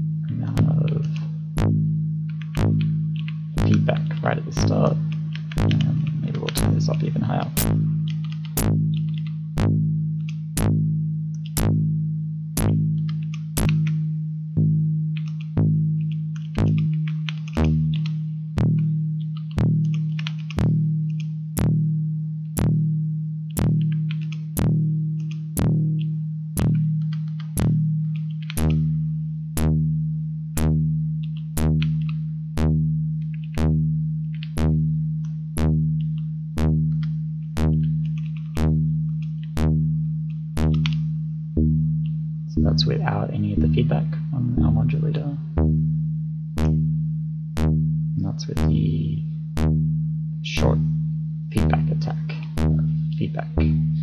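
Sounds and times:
low synth note: 0.0 - 9.0, 9.6 - 13.0, 17.6 - 18.9, 28.6 - 31.0, 31.6 - 32.0, 32.6 - 34.0, 34.6 - 36.0, 36.6 - 37.0, 37.6 - 39.0, 39.6 - 54.0.

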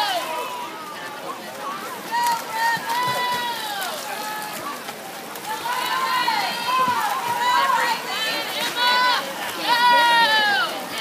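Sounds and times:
spectators yelling high-pitched shouts: 0.0 - 4.8, 5.4 - 11.0.

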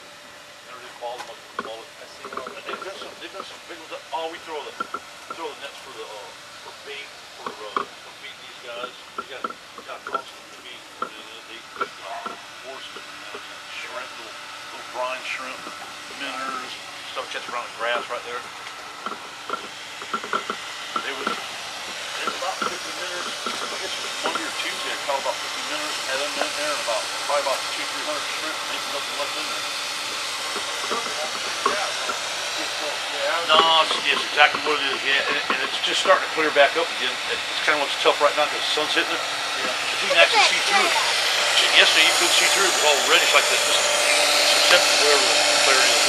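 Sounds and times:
people talking indistinctly: 0.7 - 18.5, 19.1 - 46.0
steady hiss: 0.7 - 46.0.

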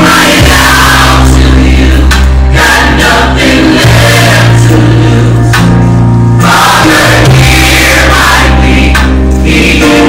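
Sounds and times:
deep held bass notes: 0.0 - 10.0
gospel choir singing: 0.0 - 10.0.

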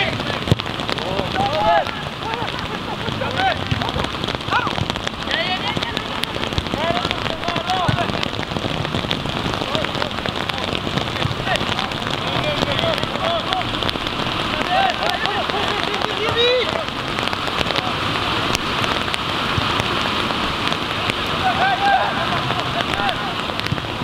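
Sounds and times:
rain pattering: 0.0 - 24.0
distant shouted voices: 21.3 - 23.5.

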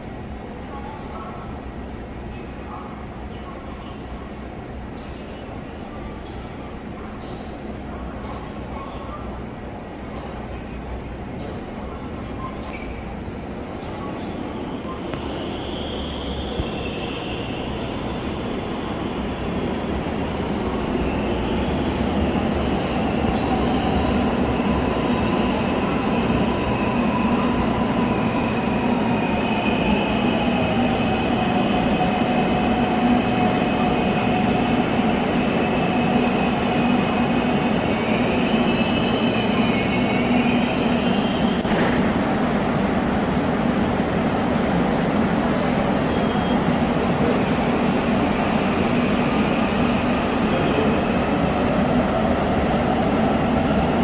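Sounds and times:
train pulling into platform: 0.0 - 54.0.

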